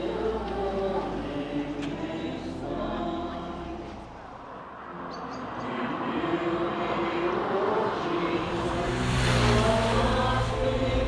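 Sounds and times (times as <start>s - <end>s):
vehicle driving past: 0.0s - 11.0s.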